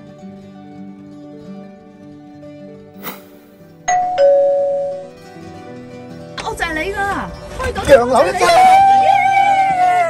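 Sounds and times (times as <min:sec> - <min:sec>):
plucked-string background music: 0:00.0 - 0:10.0
short whoosh: 0:03.0 - 0:03.6
two-note ding-dong chime: 0:03.9 - 0:05.2.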